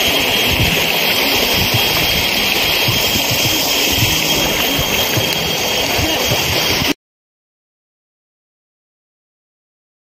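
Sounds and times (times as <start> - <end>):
stream rushing over stones: 0.0 - 7.0.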